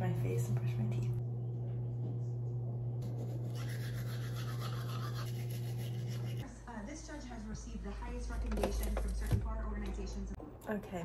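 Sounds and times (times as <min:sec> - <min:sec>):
low hum: 0:00.0 - 0:08.6
toothbrush scrubbing teeth: 0:03.0 - 0:06.5.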